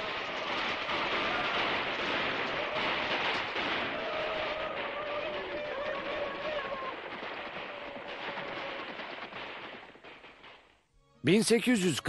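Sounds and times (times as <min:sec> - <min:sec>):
rapid gunfire: 0:00.0 - 0:10.7
galloping horse hooves: 0:00.0 - 0:10.8.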